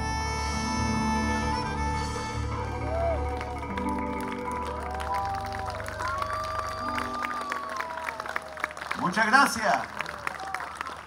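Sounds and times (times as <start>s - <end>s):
live latin band playing: 0.0s - 7.7s
audience clapping: 2.7s - 11.0s.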